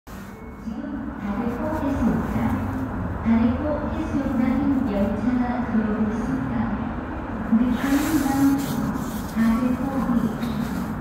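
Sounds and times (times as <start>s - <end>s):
public address announcement: 0.1s - 11.0s.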